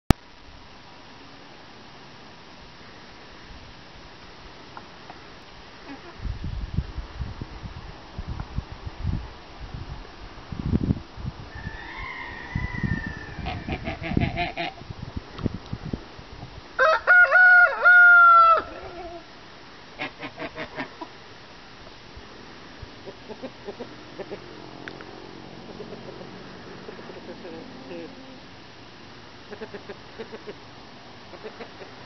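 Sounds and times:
rooster crowing: 11.5 - 14.2, 16.8 - 19.2
chickens clucking softly: 11.6 - 14.8, 23.0 - 24.5, 25.6 - 28.4, 29.5 - 30.6, 31.3 - 32.0.

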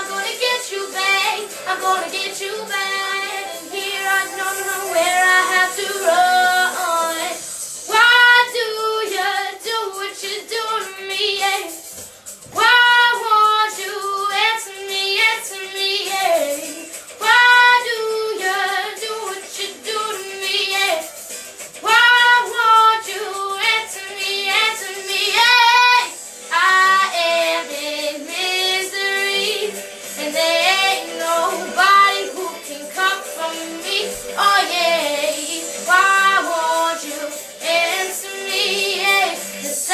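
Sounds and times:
girl singing with vibrato: 0.0 - 11.8, 12.5 - 21.1, 21.8 - 39.9.

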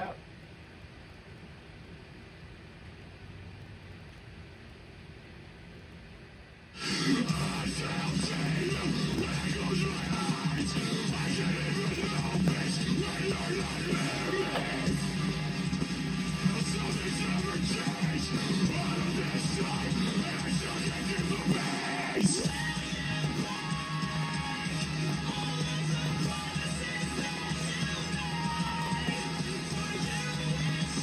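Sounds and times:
heavy rock song: 6.8 - 31.0.

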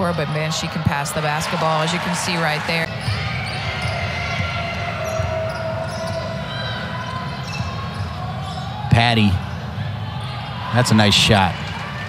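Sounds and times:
indoor arena background noise: 0.0 - 12.0.

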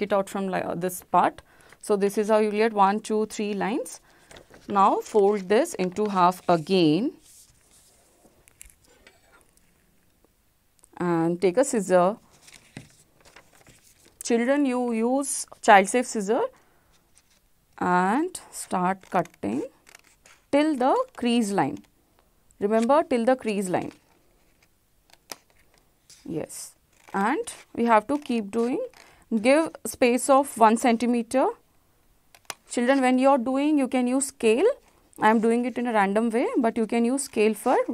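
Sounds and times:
paper being folded and creased: 3.7 - 9.3, 12.3 - 14.2, 19.0 - 21.5, 23.8 - 26.3, 26.9 - 29.1.

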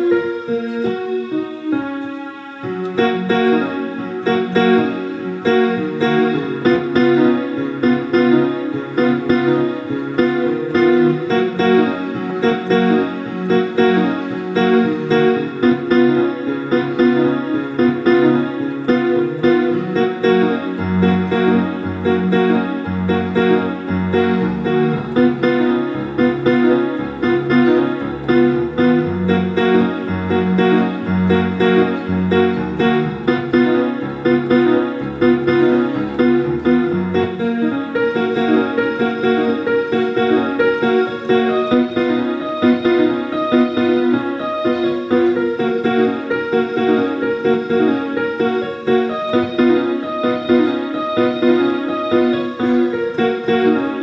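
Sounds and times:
piano finger exercise: 0.0 - 54.0
low piano bass part: 2.9 - 54.0.

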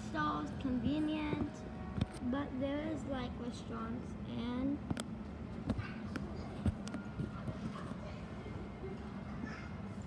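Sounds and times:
low hum of terminal hall: 0.0 - 10.0.

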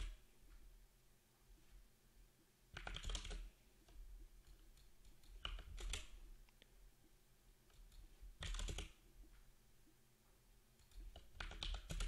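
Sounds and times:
computer keyboard keystrokes: 2.8 - 3.5, 4.4 - 6.2, 7.7 - 9.0, 10.8 - 12.0.

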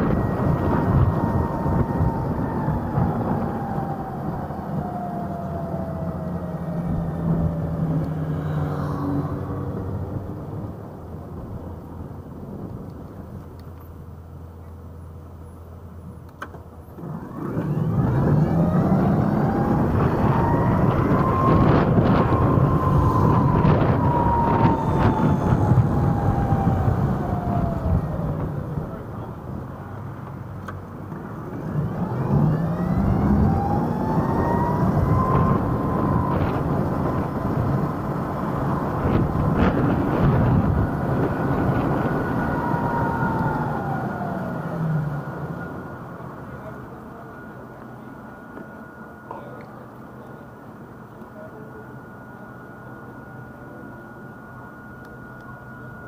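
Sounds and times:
wind and tyre noise: 0.0 - 51.2
electric motor whining: 17.0 - 29.2, 31.2 - 45.9.

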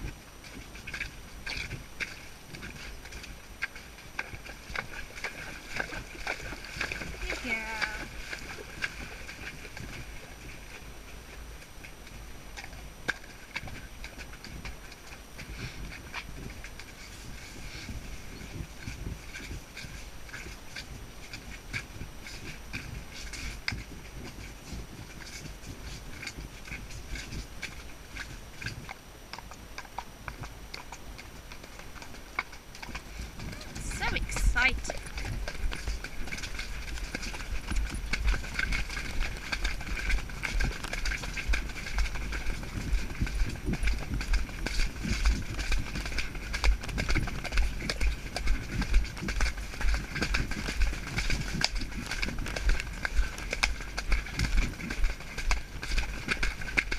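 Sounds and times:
hoofbeats on muddy track: 0.0 - 56.9.

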